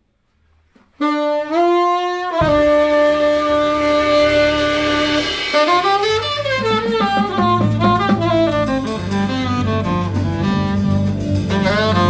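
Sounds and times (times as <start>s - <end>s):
tenor saxophone playing jazz: 0.8s - 12.0s
low bass notes: 2.4s - 12.0s.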